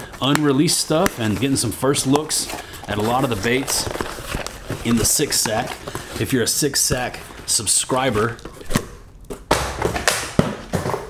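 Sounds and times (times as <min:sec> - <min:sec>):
cloth bag rustling: 0:00.0 - 0:07.6.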